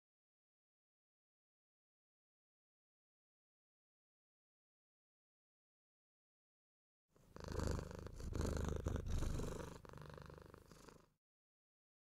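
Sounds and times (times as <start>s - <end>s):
cat purring: 7.2s - 11.2s.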